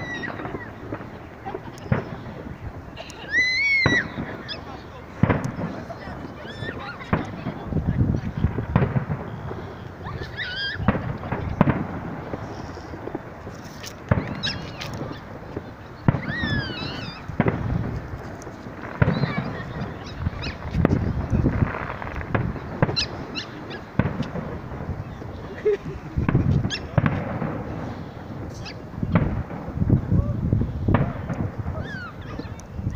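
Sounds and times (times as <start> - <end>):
distant fireworks booming: 0.0 - 32.9.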